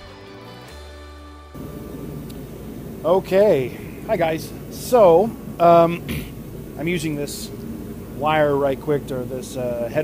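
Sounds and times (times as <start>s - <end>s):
background music: 0.0s - 2.2s
space heater low growl: 1.6s - 10.0s.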